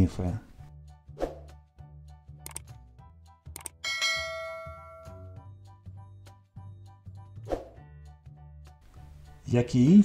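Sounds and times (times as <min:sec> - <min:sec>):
soft background music: 0:00.0 - 0:10.0
bright ding chime: 0:03.8 - 0:05.4.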